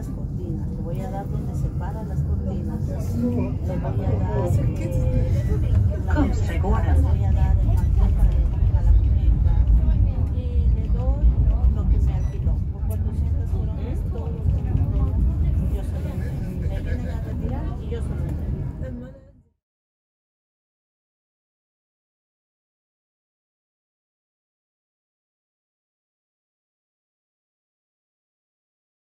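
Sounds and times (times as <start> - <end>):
tram rumbling: 0.0 - 19.4
people talking: 0.0 - 19.6.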